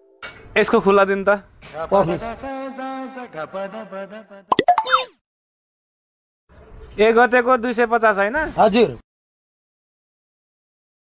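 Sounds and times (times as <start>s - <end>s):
cartoon comedy sound effect: 4.5s - 5.1s.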